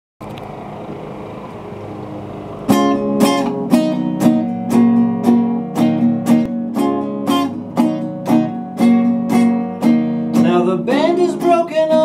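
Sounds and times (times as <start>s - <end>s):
low hum and hiss: 0.2s - 12.0s.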